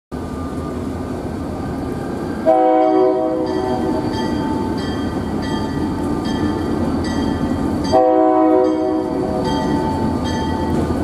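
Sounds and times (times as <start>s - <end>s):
diesel locomotive rumbling: 0.1s - 11.0s.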